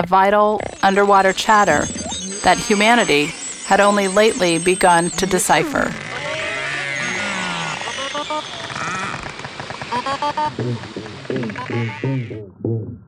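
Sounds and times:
rapid pulsed squeaks: 0.0s - 12.4s
low repeated pulses: 0.0s - 13.0s
whale whistles and chirps: 0.6s - 10.5s.

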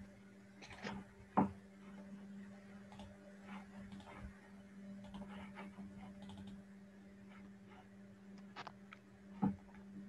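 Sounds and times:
steady low hum: 0.0s - 10.0s
typing on computer keyboard: 6.2s - 6.6s.

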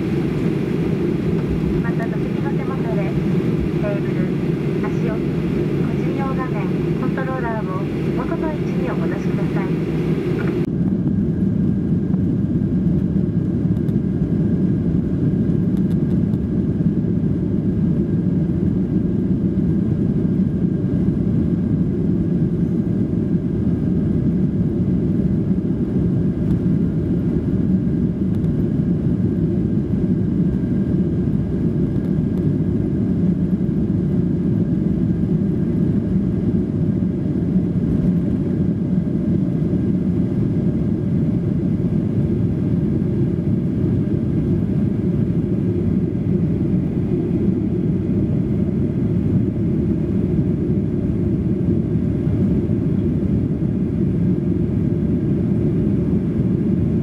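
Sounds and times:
jet engines at takeoff power: 0.0s - 57.0s
cabin announcement: 1.4s - 10.7s.

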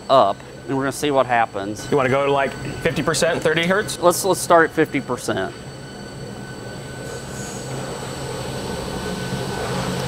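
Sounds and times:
pump motor humming and whining: 0.0s - 10.0s.

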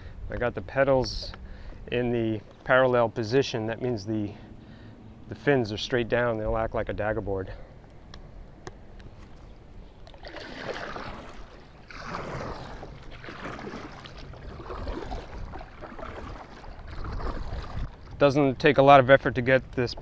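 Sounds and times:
kayak paddle splashing: 9.2s - 18.3s.

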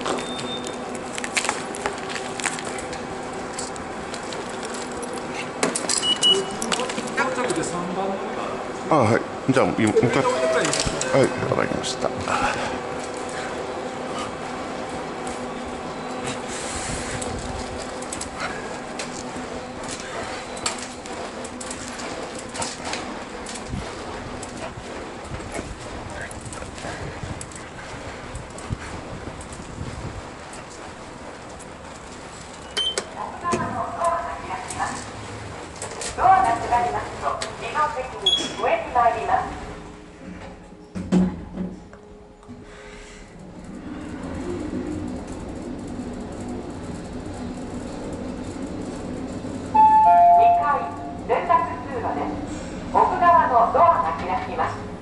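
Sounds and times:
elevator chime: 0.0s - 0.8s, 6.0s - 6.7s, 9.8s - 11.6s, 32.6s - 33.1s, 38.2s - 38.7s, 49.7s - 51.3s
wheelchair rolling on pavement: 0.0s - 40.7s, 43.2s - 55.0s
lift humming: 0.0s - 55.0s
voice announcement: 9.5s - 12.6s, 33.2s - 35.0s, 36.2s - 39.6s, 49.8s - 54.9s
short high beep: 10.2s - 10.8s, 49.8s - 50.6s
small clicks and rattles: 43.4s - 49.7s
two-note arrival chime: 49.8s - 51.0s.

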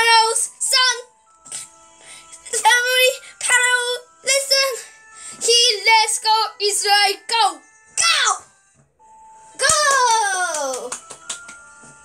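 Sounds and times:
faint steady background tones: 0.0s - 12.0s
child singing high notes: 2.4s - 8.5s.

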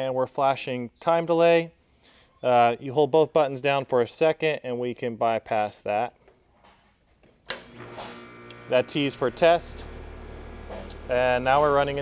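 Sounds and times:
contactor click: 7.5s - 8.7s, 10.7s - 11.1s
compressor humming: 7.5s - 12.0s.

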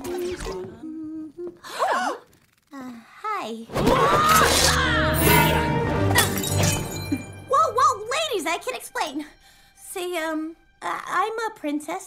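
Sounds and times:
dramatic orchestral music: 4.6s - 9.4s
glass shattering: 6.1s - 7.4s.

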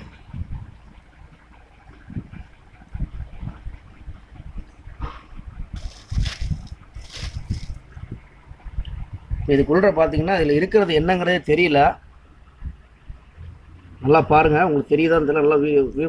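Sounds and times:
low bumps: 0.0s - 16.0s
brief rustles: 5.8s - 7.8s
hands rubbing wet film: 5.8s - 7.9s.

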